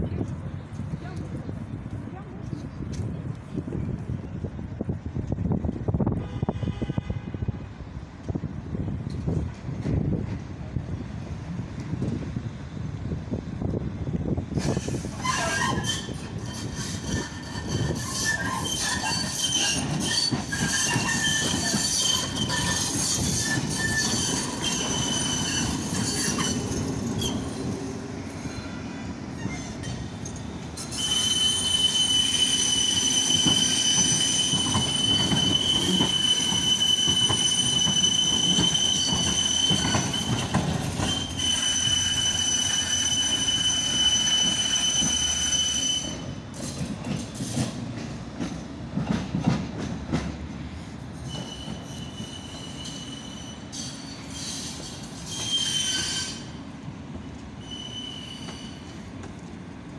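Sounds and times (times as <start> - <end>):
tram wheels squealing: 14.5 - 59.6
wheels clacking over rail joints: 14.6 - 45.7, 46.5 - 50.6.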